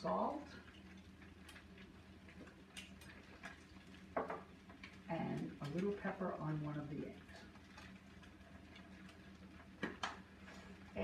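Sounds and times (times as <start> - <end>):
eggs frying: 0.0 - 11.0.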